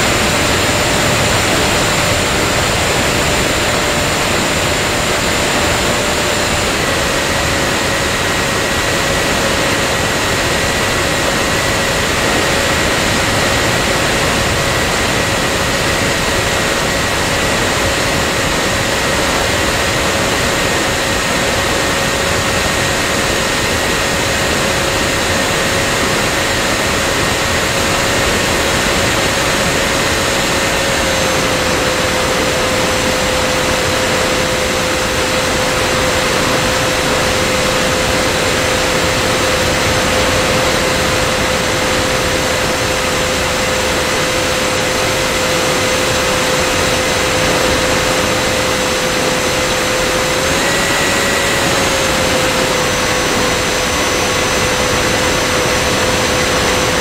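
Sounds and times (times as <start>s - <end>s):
motor and propeller tone: 0.0s - 57.0s.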